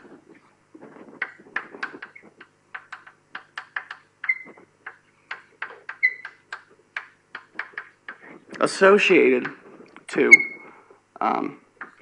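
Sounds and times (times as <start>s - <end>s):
high squeaks on board: 3.8s - 5.0s, 5.6s - 6.5s, 10.2s - 10.8s.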